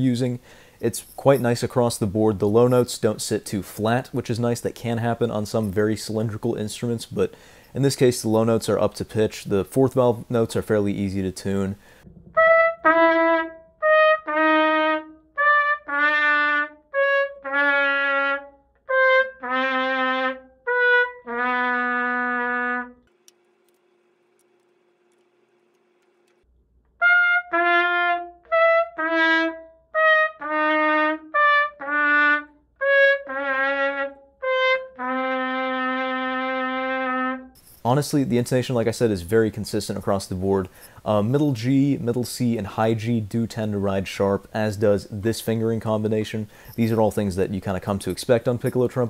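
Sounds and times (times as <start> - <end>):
piccolo trumpet notes: 12.3 - 23.0, 27.0 - 37.6.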